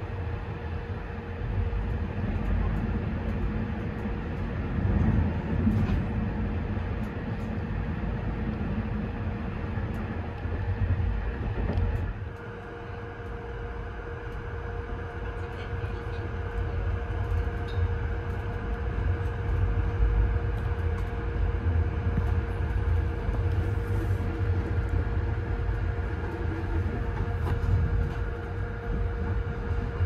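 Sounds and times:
train rumble inside coach: 0.0 - 30.0.

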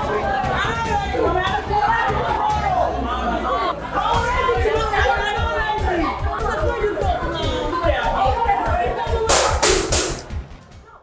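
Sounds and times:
people talking over one another: 0.0 - 9.9.

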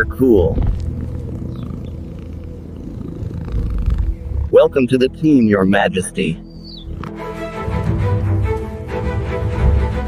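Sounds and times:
lioness purring: 0.0 - 7.2.

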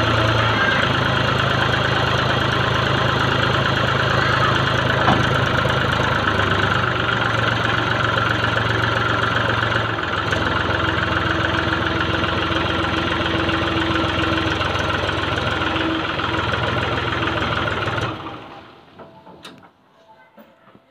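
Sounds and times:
tractor diesel engine running: 0.0 - 19.8.

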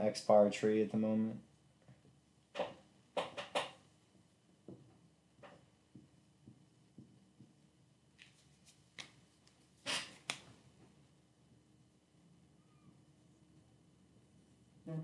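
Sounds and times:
handwriting taps and scratches: 2.6 - 3.8.

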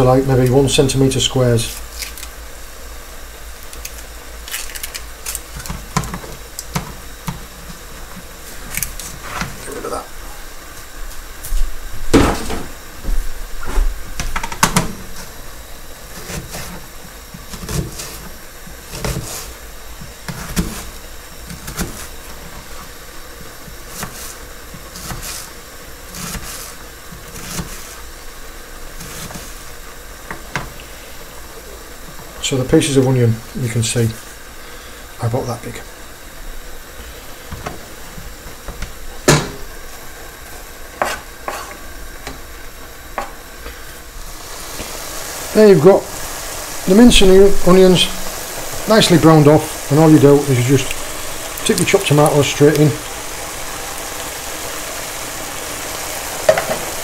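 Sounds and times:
steady low hiss: 0.0 - 57.0.

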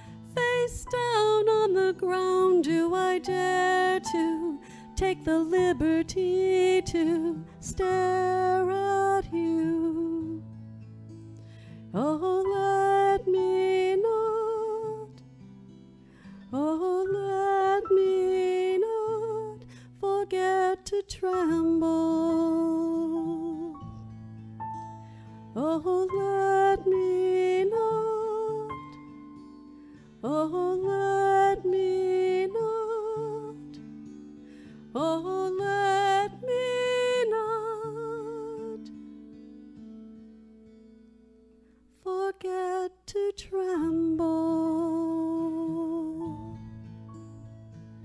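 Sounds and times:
guitar: 0.0 - 48.0.

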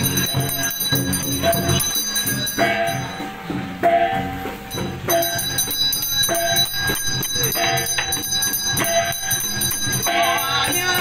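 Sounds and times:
gong and drum strikes: 0.0 - 11.0
high bell ringing: 0.0 - 11.0.

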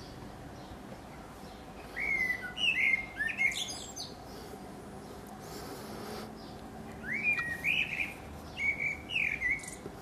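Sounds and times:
blackbird singing: 0.0 - 4.4, 6.2 - 10.0.

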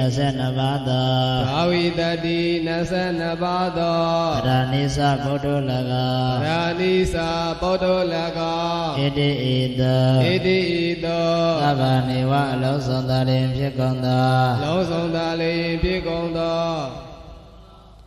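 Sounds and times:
man chanting into a microphone: 0.0 - 18.0.

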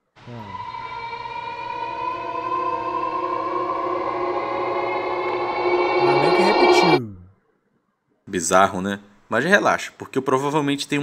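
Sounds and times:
eerie electronic drone: 0.2 - 7.0.

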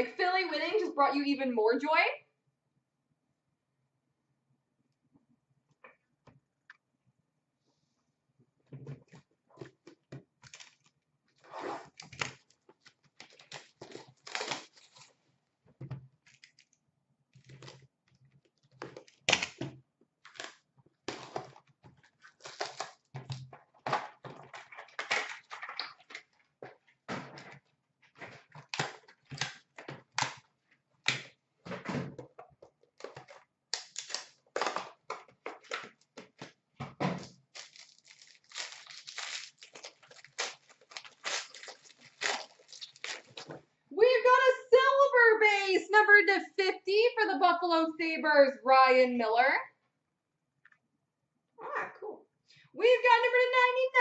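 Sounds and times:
pack wrapper crinkling: 12.0 - 15.2, 20.2 - 23.4, 37.2 - 43.6.

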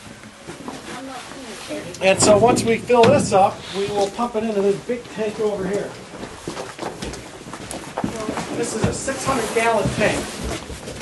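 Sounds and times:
people shuffling: 0.4 - 11.0.

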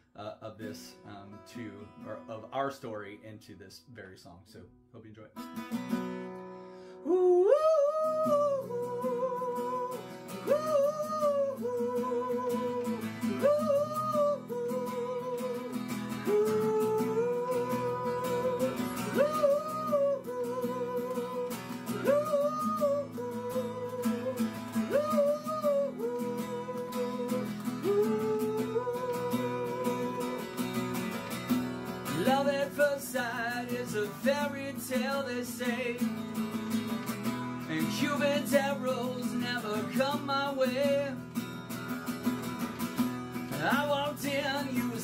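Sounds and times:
man singing wordless melody: 0.0 - 5.4, 7.0 - 31.1, 32.0 - 36.8, 37.6 - 41.3, 43.5 - 45.0
acoustic guitar strumming chords: 5.2 - 45.0.

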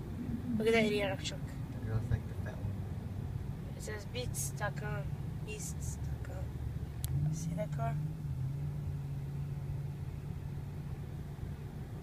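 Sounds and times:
car engine hum: 0.0 - 12.0
tyre road rumble: 0.0 - 12.0.

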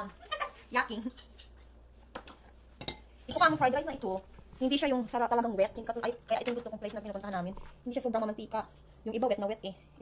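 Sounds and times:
tableware clinking: 2.8 - 3.6.

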